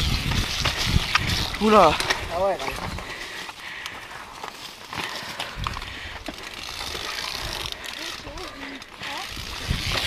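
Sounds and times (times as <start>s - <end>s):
mountain bike rattling over rocks: 0.0s - 10.0s.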